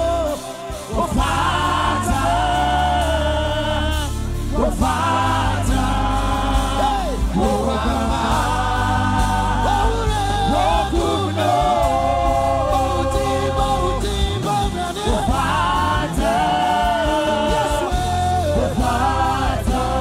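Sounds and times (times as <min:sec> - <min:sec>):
gospel choir singing: 0:00.0 - 0:20.0
instrumental backing with bass: 0:00.0 - 0:20.0.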